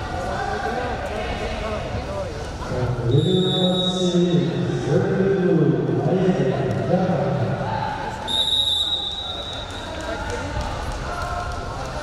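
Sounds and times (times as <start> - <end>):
referee whistle: 3.1 - 4.2, 8.3 - 9.7.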